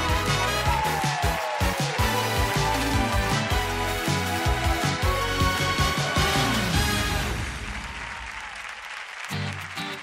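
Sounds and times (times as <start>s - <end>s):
loud musical intro: 0.0s - 8.0s
studio audience applauding: 0.0s - 10.0s.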